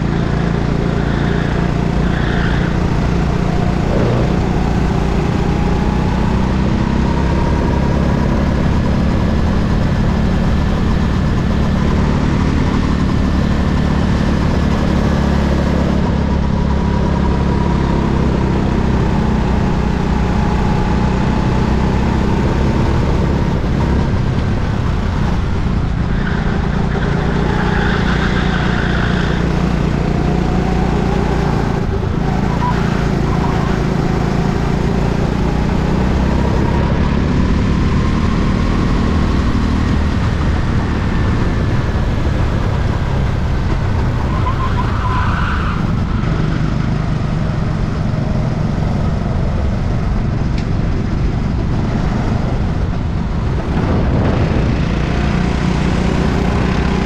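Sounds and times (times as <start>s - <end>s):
go-kart engine running: 0.0s - 57.0s.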